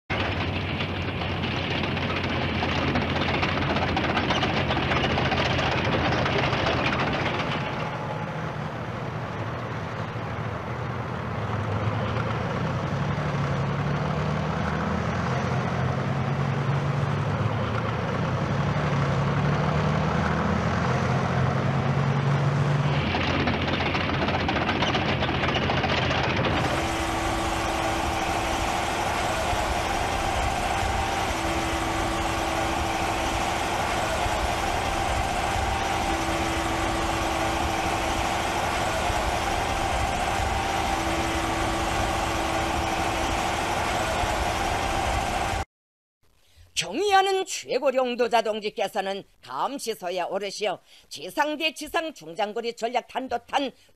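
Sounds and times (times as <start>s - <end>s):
heavy tracked vehicle engine drone: 0.1s - 45.7s
high whine: 22.8s - 45.7s.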